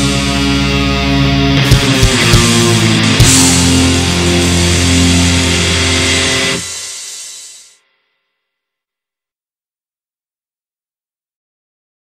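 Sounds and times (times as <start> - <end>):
distorted electric guitars and bass: 0.0 - 7.9.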